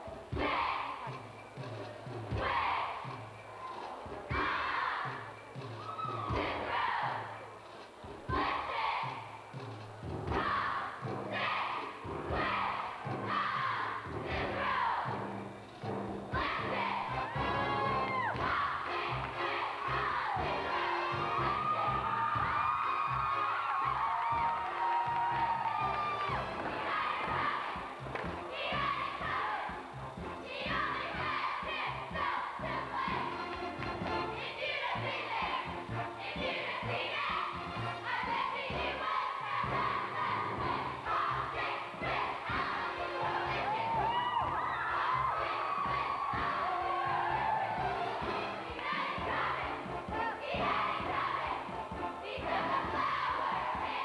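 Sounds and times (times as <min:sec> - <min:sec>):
stage-show music with steady beat: 0:00.0 - 0:54.0
women's chorus singing in unison: 0:00.3 - 0:01.2, 0:02.3 - 0:03.4, 0:04.3 - 0:05.4, 0:06.0 - 0:07.5, 0:08.3 - 0:09.5, 0:10.2 - 0:15.4, 0:16.3 - 0:54.0
audience cheering and screaming: 0:21.2 - 0:26.6, 0:43.6 - 0:47.9.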